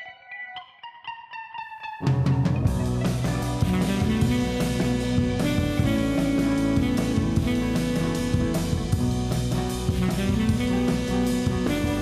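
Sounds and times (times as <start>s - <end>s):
plucked notes melody: 0.0s - 6.8s.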